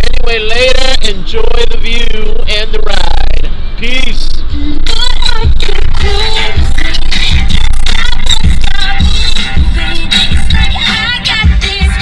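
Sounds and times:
music with singing over a beat: 0:04.3 - 0:12.0.

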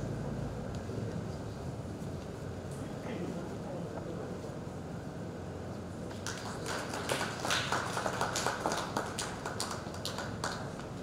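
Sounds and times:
audience clapping: 0:06.1 - 0:11.0.

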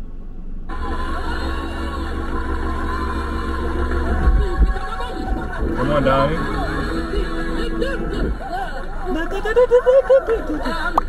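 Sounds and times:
low hum: 0:00.0 - 0:11.0
gospel concert music: 0:00.7 - 0:11.0.

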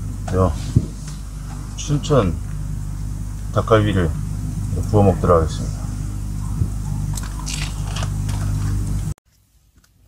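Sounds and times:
steady low hum: 0:00.0 - 0:10.0
plastic wrapper crinkling: 0:07.2 - 0:08.6.

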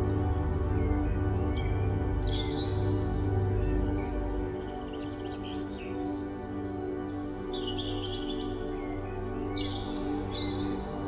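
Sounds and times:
soft ambient music: 0:00.0 - 0:11.0.

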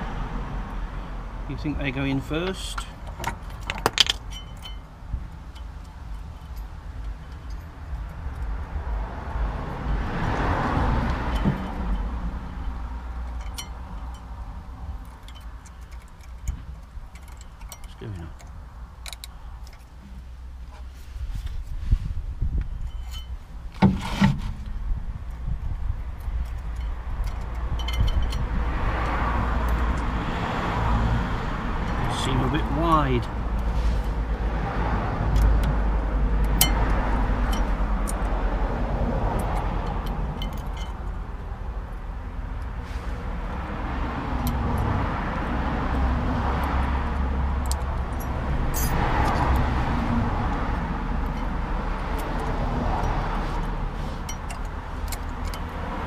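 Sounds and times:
metallic clinks and rattles: 0:02.8 - 0:08.6, 0:11.2 - 0:20.2, 0:22.7 - 0:23.5, 0:26.0 - 0:30.2, 0:36.4 - 0:38.4, 0:39.2 - 0:41.4, 0:47.0 - 0:56.0
steady low rumble: 0:24.5 - 0:30.3.

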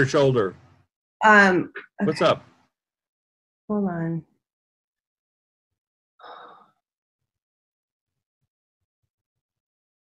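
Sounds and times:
person sighing: 0:06.2 - 0:06.7.

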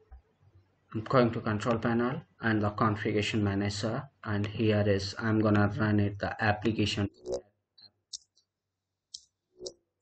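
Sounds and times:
computer mouse clicks: 0:08.1 - 0:08.5.

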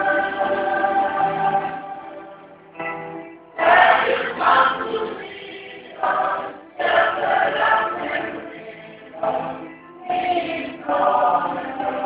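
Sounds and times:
youth choir singing gospel: 0:00.0 - 0:02.4, 0:03.6 - 0:12.0.

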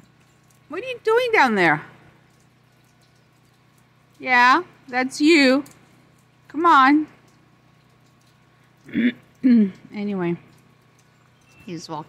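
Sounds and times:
low steady hum: 0:00.0 - 0:12.0
person clearing throat: 0:08.9 - 0:09.8.

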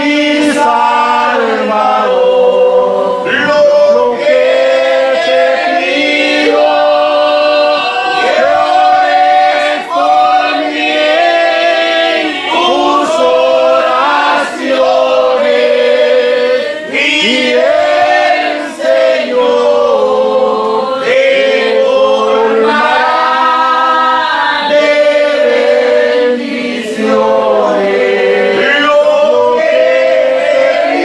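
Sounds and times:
congregation singing a hymn: 0:00.0 - 0:31.0.

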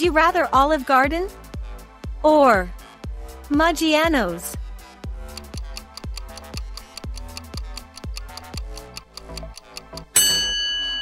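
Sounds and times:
background music: 0:00.0 - 0:11.0
clock ticking: 0:05.3 - 0:10.4
bright bell ding: 0:10.2 - 0:11.0.

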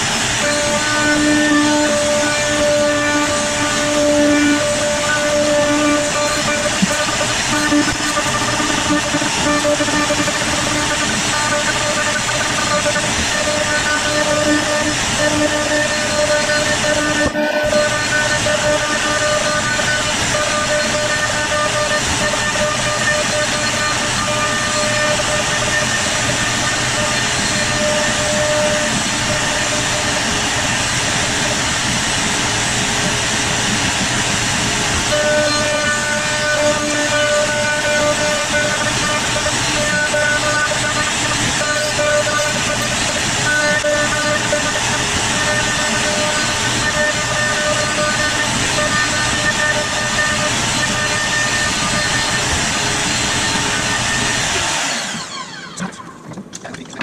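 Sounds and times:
router milling wood: 0:00.0 - 0:56.1
faint spindle whine: 0:00.0 - 0:56.4.

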